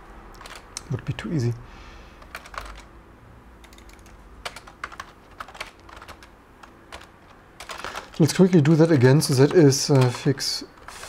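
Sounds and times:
computer keyboard typing: 0:00.4 - 0:00.9, 0:02.2 - 0:02.9, 0:03.6 - 0:11.0.

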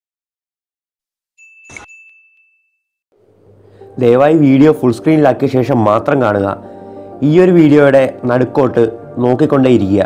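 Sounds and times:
high bell ding: 0:01.4 - 0:03.0.

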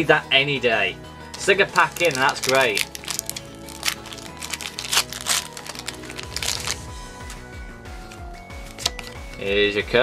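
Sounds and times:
background music: 0:00.0 - 0:10.0
foil wrapper crinkling and tearing: 0:01.4 - 0:07.4, 0:08.1 - 0:09.2.

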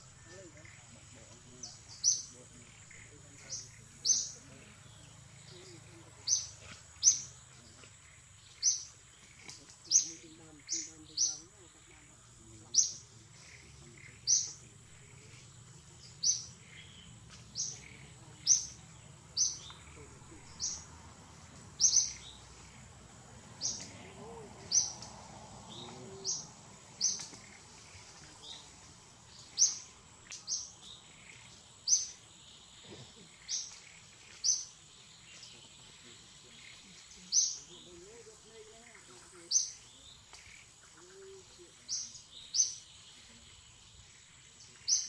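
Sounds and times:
bird chirping: 0:00.0 - 0:45.0.

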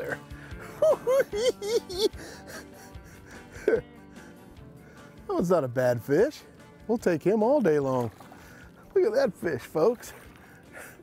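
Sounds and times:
man laughing: 0:00.0 - 0:03.9
background music: 0:00.0 - 0:11.0.

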